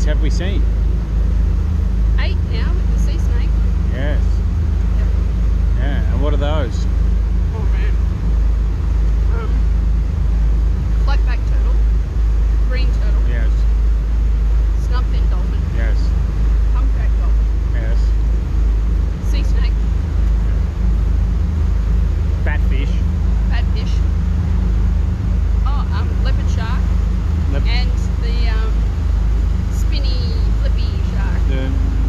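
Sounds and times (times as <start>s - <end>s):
faint voices: 0.0s - 0.6s, 2.2s - 4.3s, 5.8s - 6.8s, 12.7s - 13.6s, 14.8s - 16.1s, 16.8s - 18.1s, 22.4s - 24.0s, 27.5s - 28.8s, 29.7s - 32.0s
boat engine running: 0.0s - 32.0s.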